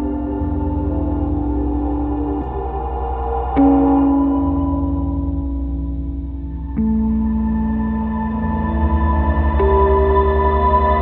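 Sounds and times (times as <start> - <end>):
low drone: 0.0 - 11.0
slow ambient guitar duet: 0.0 - 11.0.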